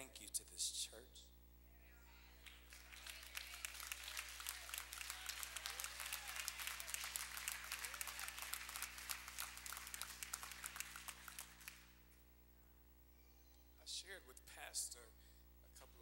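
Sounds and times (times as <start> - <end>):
congregation clapping: 2.4 - 12.0.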